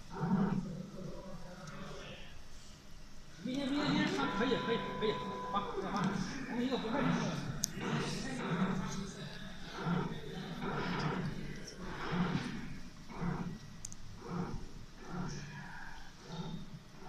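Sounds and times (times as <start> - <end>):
indistinct background talking: 3.4 - 13.4.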